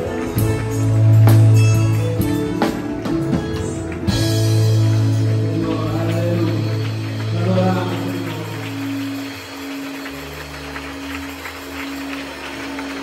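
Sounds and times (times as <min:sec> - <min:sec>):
bass guitar: 0:00.0 - 0:13.0
person's voice: 0:05.4 - 0:09.0.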